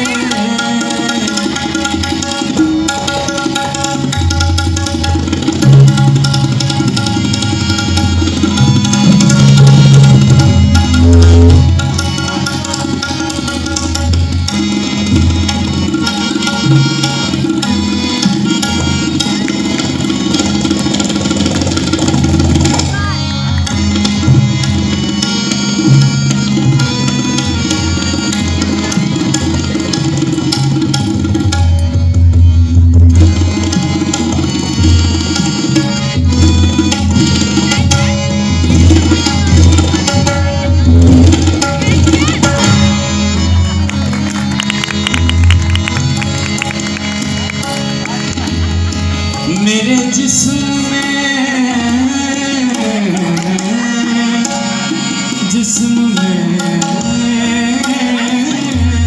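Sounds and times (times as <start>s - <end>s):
harmonium drone: 0.0s - 59.0s
tabla strokes: 0.0s - 59.0s.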